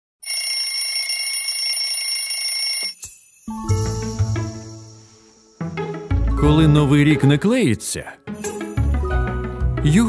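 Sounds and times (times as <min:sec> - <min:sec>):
smartphone alarm ringing: 0:00.2 - 0:03.0.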